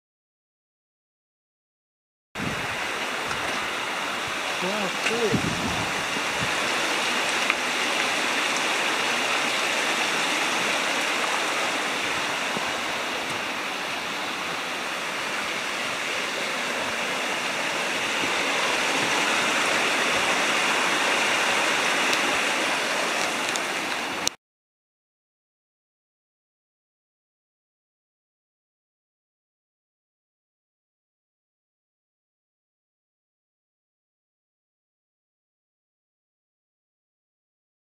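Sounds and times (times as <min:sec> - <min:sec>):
stream rushing over rocks: 0:02.4 - 0:24.4.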